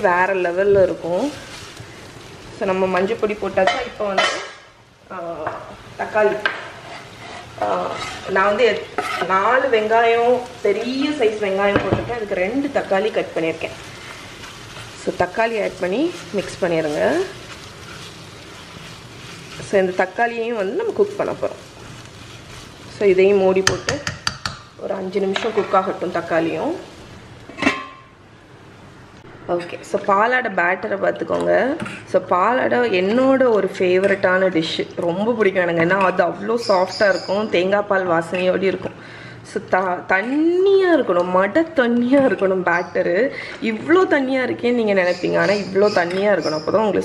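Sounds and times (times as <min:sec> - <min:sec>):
woman speaking: 0:00.0 - 0:01.4, 0:02.6 - 0:04.4, 0:05.1 - 0:06.5, 0:07.6 - 0:13.8, 0:15.0 - 0:17.4, 0:19.6 - 0:21.6, 0:22.9 - 0:24.1, 0:24.8 - 0:26.9, 0:29.5 - 0:38.9, 0:39.5 - 0:47.0
onions sizzling in oil: 0:00.0 - 0:29.0, 0:44.0 - 0:47.0
wooden spatula stirring: 0:06.3 - 0:24.6
wooden spoon knocking pan: 0:23.6 - 0:24.7.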